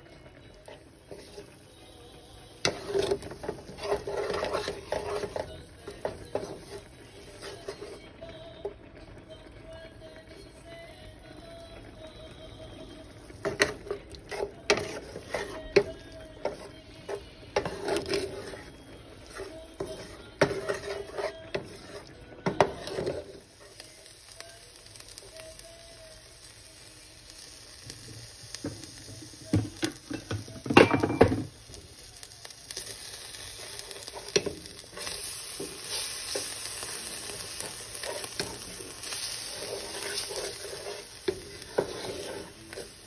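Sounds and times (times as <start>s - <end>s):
food sizzling in frying pan: 0.0s - 43.0s
spatula scraping pan: 0.1s - 8.1s, 11.8s - 23.8s, 32.7s - 43.0s.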